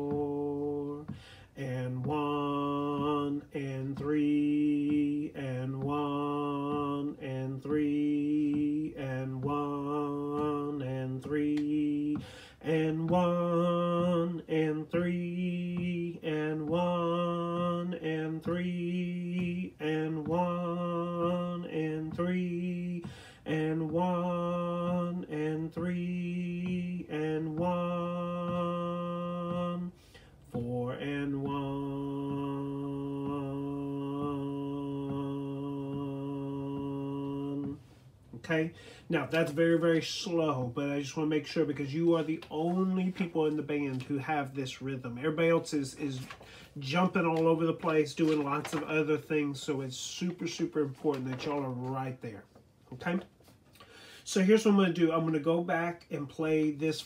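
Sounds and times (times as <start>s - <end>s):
man singing sustained notes: 0.0s - 37.9s.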